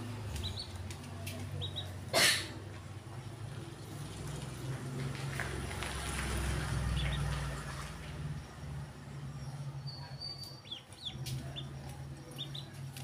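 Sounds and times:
ducklings peeping: 0.2s - 2.1s, 6.8s - 7.5s, 9.8s - 13.0s.

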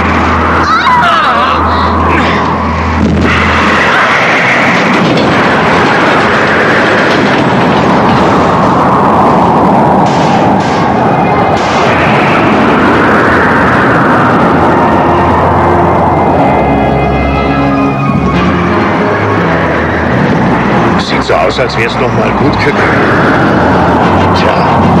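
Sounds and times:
loud rushing roar: 0.0s - 25.0s.

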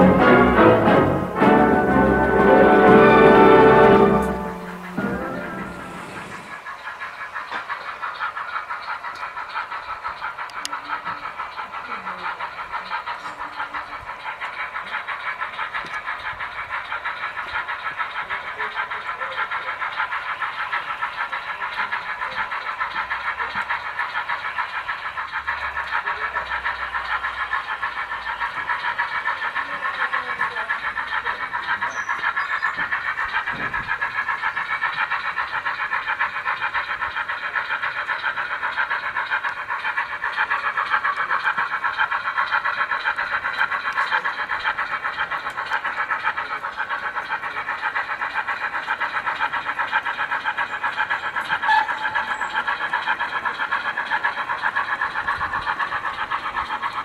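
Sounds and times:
model steam locomotive chuffing: 0.0s - 57.0s.

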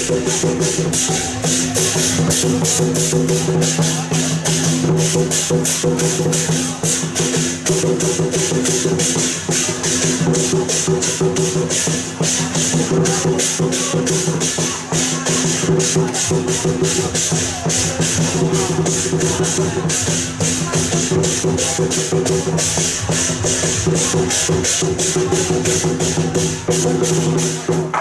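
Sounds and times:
cymbals clashing: 0.0s - 28.0s
drum beating fast rhythm: 0.0s - 28.0s.

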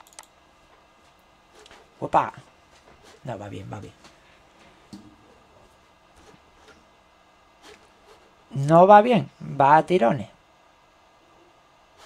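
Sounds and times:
computer mouse clicks: 0.0s - 0.3s.

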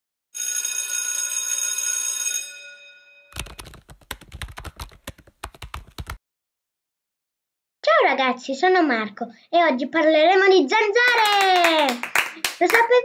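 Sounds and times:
school bell ringing: 0.4s - 3.4s.

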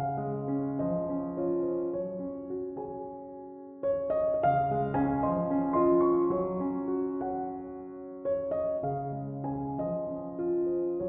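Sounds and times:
soft meditation piano music: 0.0s - 11.0s.

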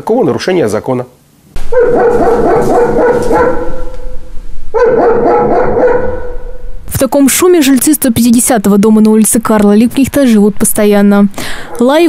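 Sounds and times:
dog barking behind door: 1.6s - 6.8s.

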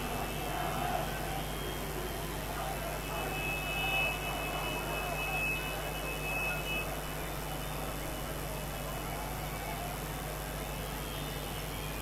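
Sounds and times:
distant city street: 0.0s - 12.0s.

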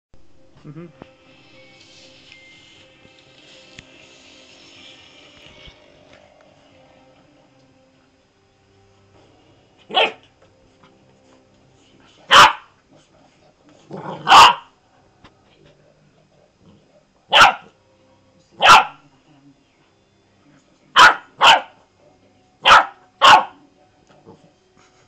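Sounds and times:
puppy barking: 9.9s - 10.2s, 12.3s - 12.7s, 14.2s - 14.7s, 17.3s - 17.7s, 18.6s - 19.0s, 21.0s - 21.8s, 22.6s - 23.6s.

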